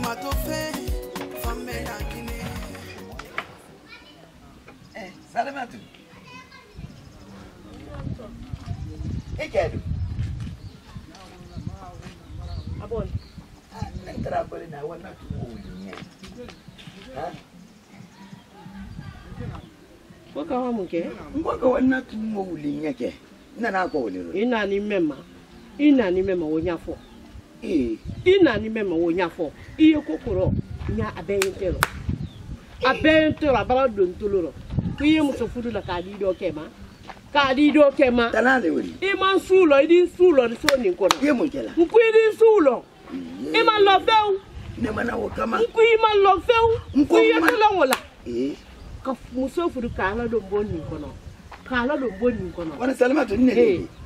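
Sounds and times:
sharp hand claps: 31.4s - 32.1s, 40.6s - 41.4s, 47.4s - 48.1s
woman talking: 43.5s - 44.5s, 45.6s - 48.1s.

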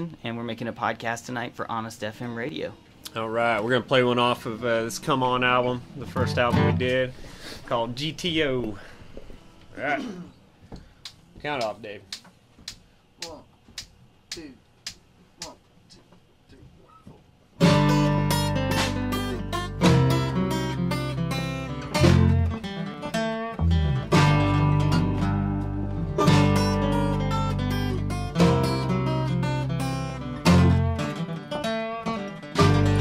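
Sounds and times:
acoustic guitar strumming: 3.7s - 7.2s, 17.6s - 33.0s
electric bass: 17.6s - 31.2s, 32.5s - 33.0s.

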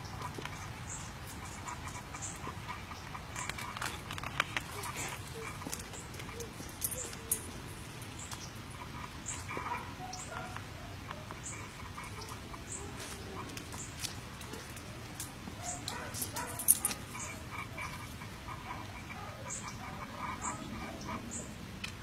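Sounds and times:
dog making small sounds: 0.2s - 7.7s, 8.7s - 21.5s.

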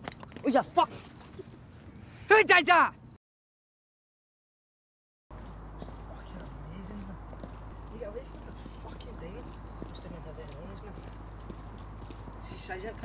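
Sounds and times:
distant indistinct voices: 5.3s - 13.0s
footsteps on pavement: 5.3s - 13.0s
steady low hum: 5.3s - 13.0s.

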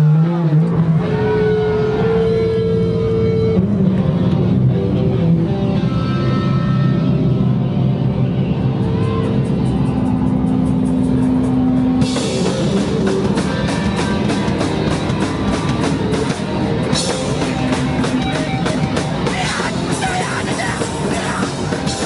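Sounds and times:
distorted guitar and bass drone: 0.0s - 22.0s.

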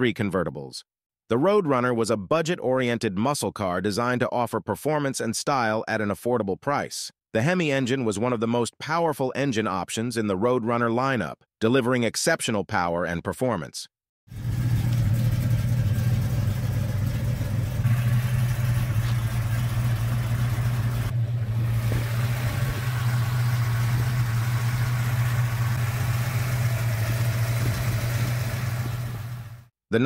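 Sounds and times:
engine idling: 14.3s - 29.7s.

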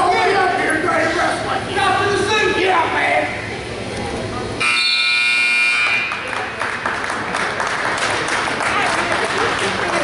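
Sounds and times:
scoreboard buzzer: 4.6s - 6.3s.

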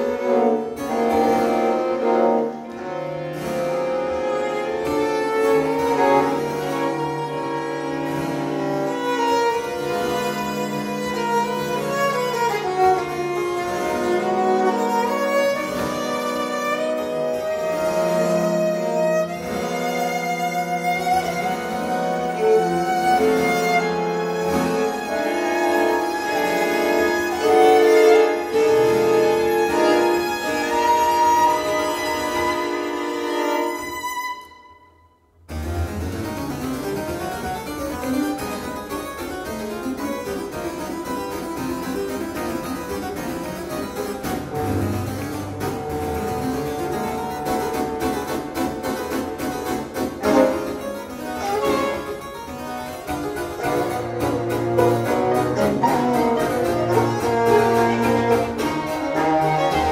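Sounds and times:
harpsichord rapid figuration: 35.5s - 59.9s.

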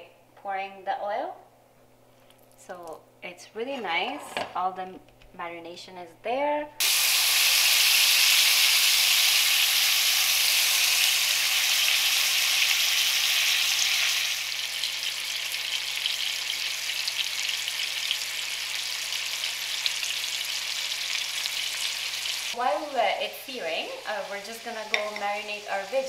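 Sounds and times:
meat sizzling in hot oil: 6.8s - 26.0s.

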